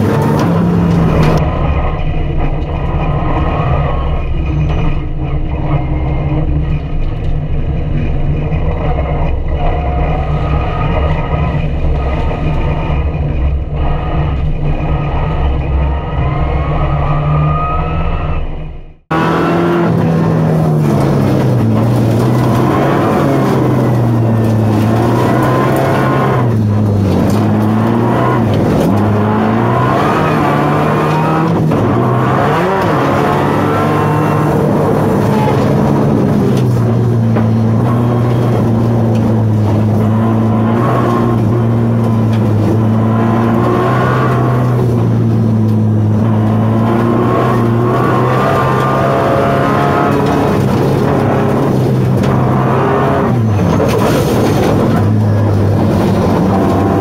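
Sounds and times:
car engine revving at speed: 0.0s - 57.0s.

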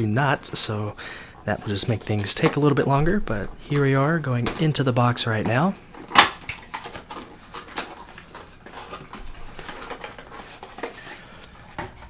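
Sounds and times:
cardboard packaging rustling: 5.6s - 12.0s.

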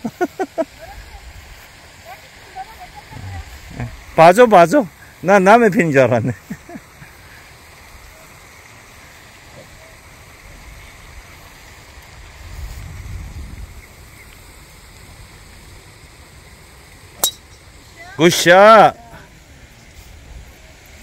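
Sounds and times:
golf club striking ball: 17.2s - 17.8s.

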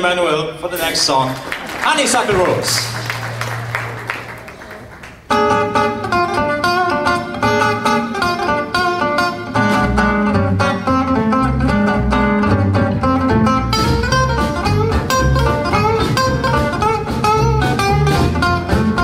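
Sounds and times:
acoustic guitars playing: 2.3s - 19.0s
low bass notes: 9.4s - 19.0s.

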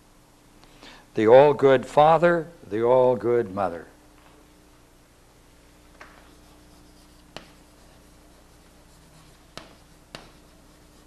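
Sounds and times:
chalk tap on board: 6.0s - 8.0s, 8.6s - 10.7s
chalk scratching on blackboard: 6.2s - 11.0s.

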